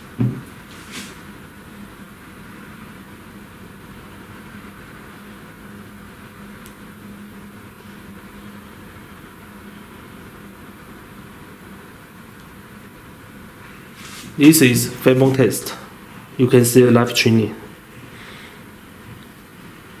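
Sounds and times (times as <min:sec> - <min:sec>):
room hum and hiss: 0:00.0 - 0:20.0.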